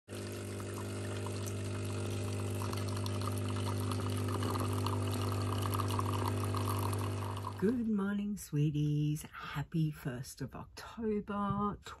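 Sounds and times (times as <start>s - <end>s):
coffee pouring into a mug: 0.1s - 7.6s
espresso machine pump humming: 0.1s - 7.6s.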